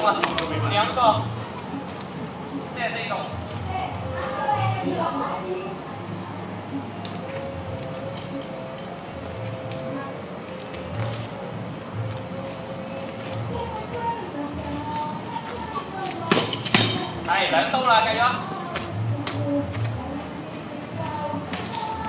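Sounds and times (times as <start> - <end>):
swords clashing: 16.3 - 17.2.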